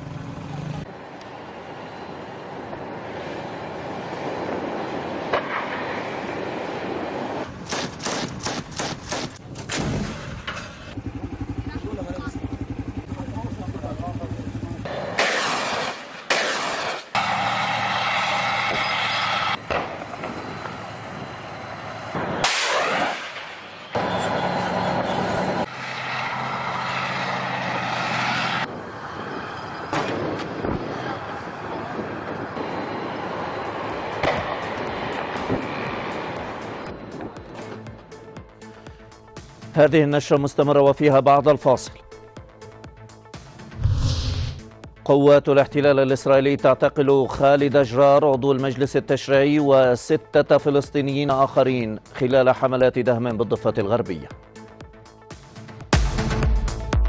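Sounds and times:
gunshots: 7.6 - 10.7, 14.9 - 17.2, 22.3 - 23.7
tank engine running: 10.4 - 15.2, 17.2 - 22.5, 23.8 - 37.8.

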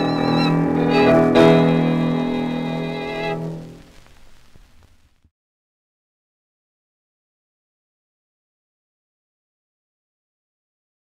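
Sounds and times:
violin and piano chord: 0.0 - 3.8
record surface hiss and clicks: 0.0 - 5.3.

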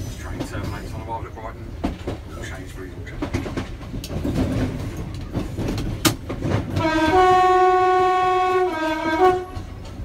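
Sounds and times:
train running noise on board: 0.0 - 10.0
train wheel clicks over rail joints: 1.8 - 7.0.

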